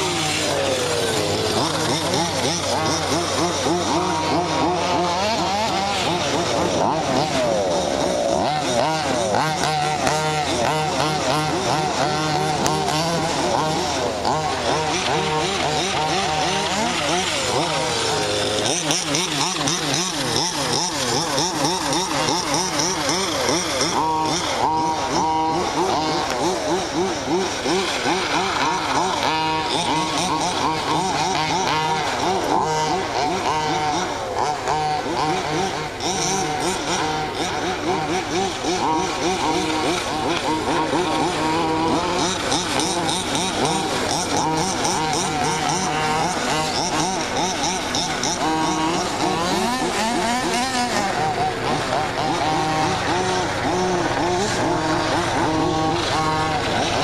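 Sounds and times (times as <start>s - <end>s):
small two-stroke engines revving: 0.0s - 57.0s.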